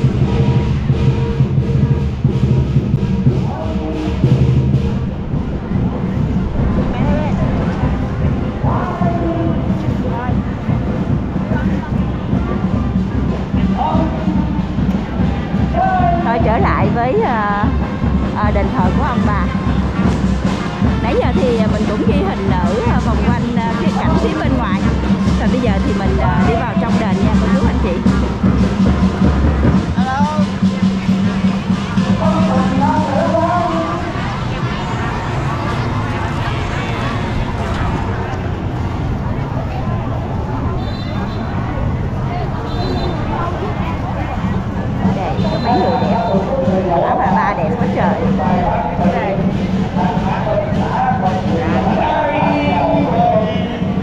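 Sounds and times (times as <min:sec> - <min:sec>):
music with drumming: 0:00.0 - 0:37.6, 0:42.6 - 0:54.0
people's voices: 0:00.0 - 0:54.0.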